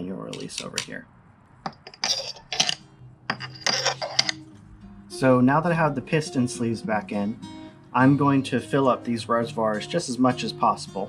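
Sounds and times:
metal hand tools clinking: 1.7s - 4.5s.

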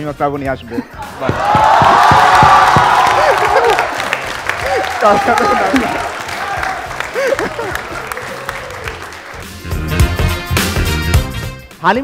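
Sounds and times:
people laughing: 0.7s - 9.1s
music with steady beat: 1.0s - 3.4s, 9.2s - 12.0s
audience cheering: 1.0s - 9.6s.

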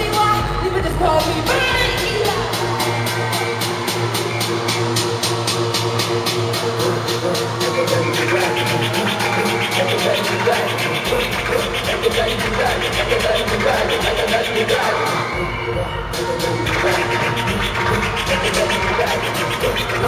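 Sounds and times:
electronic music over loudspeakers: 0.0s - 20.0s.

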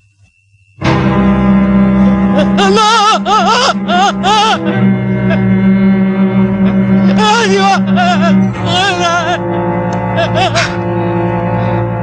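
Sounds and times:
low sustained string score: 0.8s - 12.0s
man crying out: 2.4s - 5.5s, 6.6s - 9.5s, 10.1s - 10.8s.

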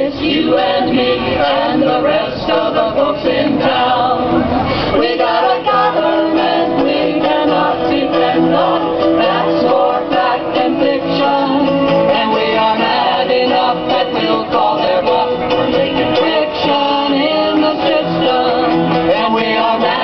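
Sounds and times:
men and women singing together: 0.0s - 20.0s
strummed acoustic guitar: 0.5s - 20.0s.

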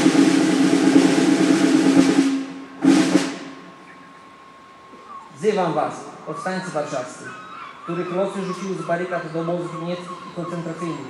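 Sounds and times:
snare drum roll: 0.0s - 3.7s.

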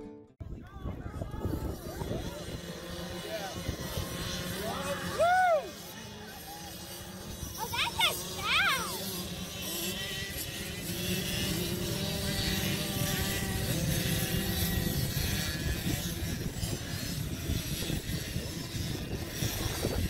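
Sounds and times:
motorcycle engines running: 0.6s - 20.0s.

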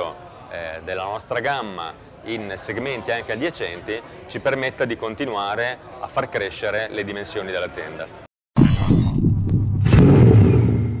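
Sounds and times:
deep logo sound: 8.6s - 11.0s
held low tone: 8.6s - 11.0s.

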